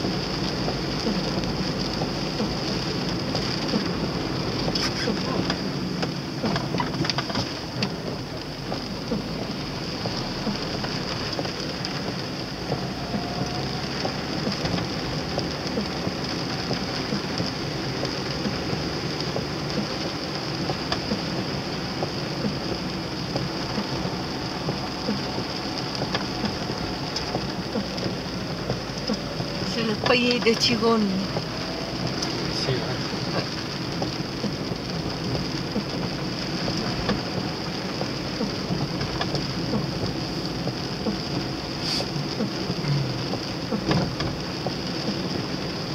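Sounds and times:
engine and tyres on wet road: 0.0s - 45.9s
heavy rain on a car: 0.0s - 45.9s.

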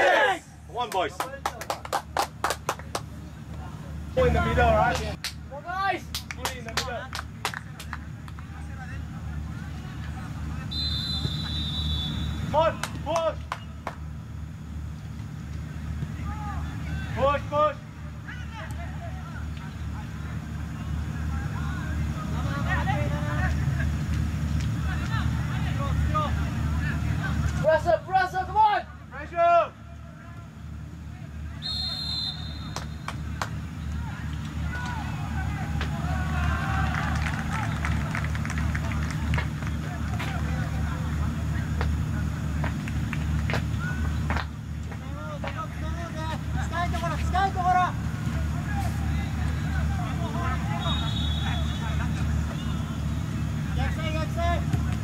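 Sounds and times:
loud close shouts: 0.0s - 1.1s, 31.6s - 38.2s
players calling out: 0.0s - 55.0s
high whistle: 10.7s - 12.5s, 31.6s - 33.1s, 50.7s - 51.9s.

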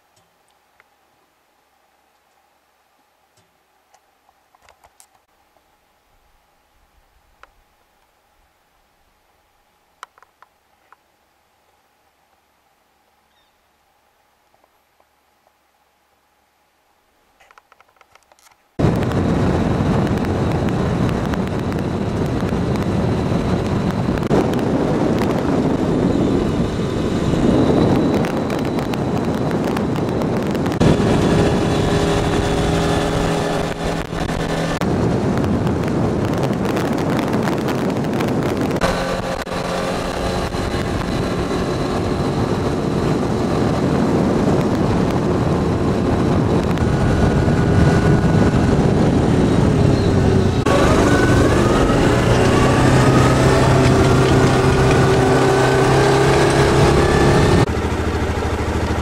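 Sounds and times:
engine tone: 18.8s - 34.9s, 38.5s - 59.0s
vehicle driving on gravel: 18.8s - 59.0s.

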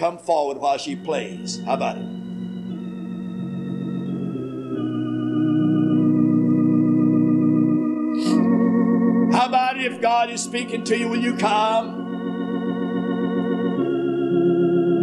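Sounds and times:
man speaking: 0.0s - 2.1s, 9.3s - 12.0s
organ sustained chords: 0.0s - 15.0s.

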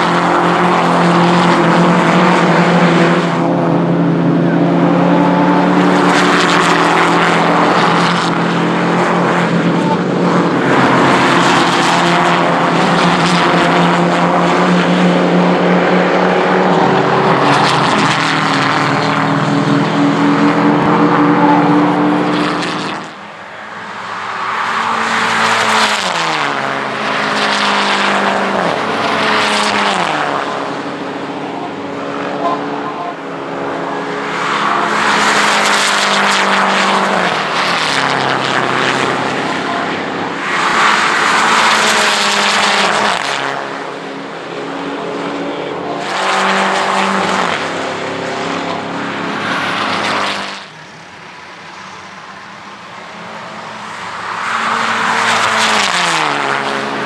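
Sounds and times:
race car engines passing: 0.0s - 57.0s.

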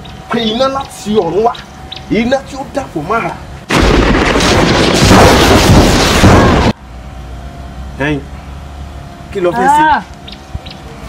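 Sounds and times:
crackling lightning strike: 3.7s - 6.8s.

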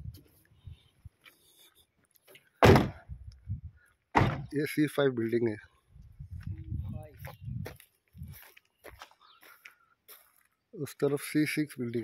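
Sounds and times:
loud thump: 2.6s - 3.1s, 4.1s - 4.5s.

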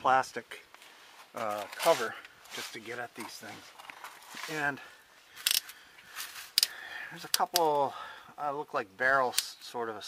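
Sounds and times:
faint rustling: 0.7s - 6.6s.

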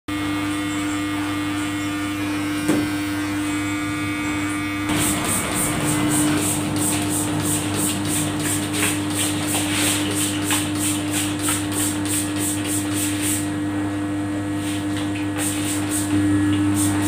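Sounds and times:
electric hair clipper buzzing: 0.1s - 17.0s
spray bottle spritzing: 6.2s - 13.4s.

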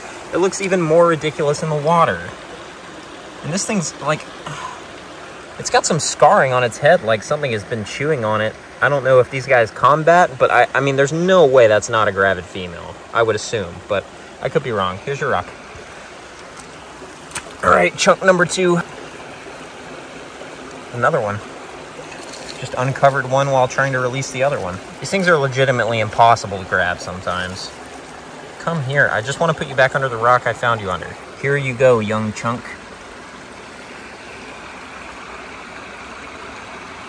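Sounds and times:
creek water running over stones: 0.0s - 37.0s.

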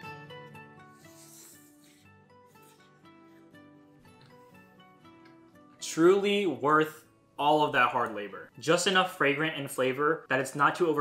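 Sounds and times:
person slurping noodles: 0.9s - 3.0s
soft plucked-string music: 2.6s - 5.8s.

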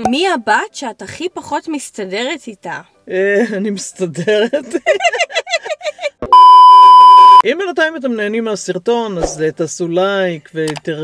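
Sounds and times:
women laughing: 4.6s - 6.2s
loud steady test-tone beep: 6.3s - 7.4s.

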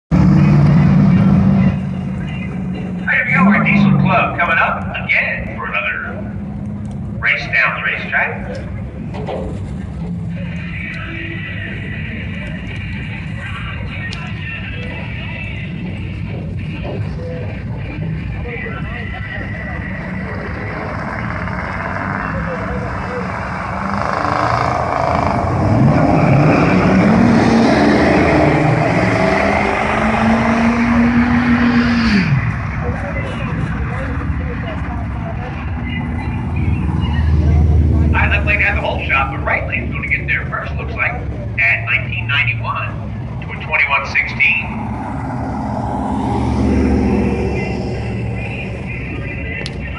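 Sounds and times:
diesel trucks idling: 0.1s - 30.7s, 32.2s - 49.9s
truck engines revving and launching: 0.1s - 49.9s.

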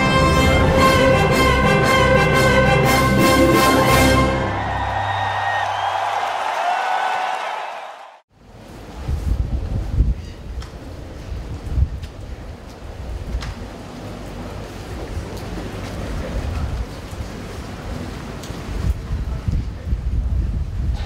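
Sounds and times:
wind buffeting microphone: 8.8s - 13.8s, 18.6s - 21.0s.

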